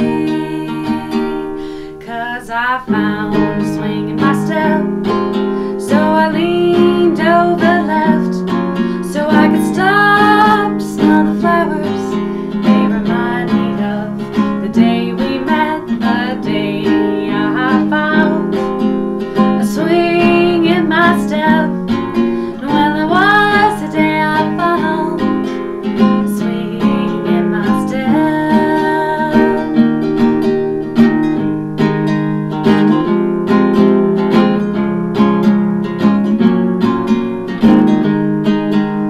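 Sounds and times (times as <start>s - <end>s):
woman singing: 0.0s - 30.4s, 32.5s - 33.2s
strummed acoustic guitar: 0.0s - 39.0s.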